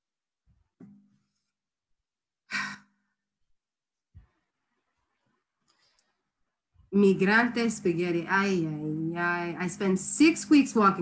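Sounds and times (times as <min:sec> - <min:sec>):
person sighing: 0:02.5 - 0:03.0.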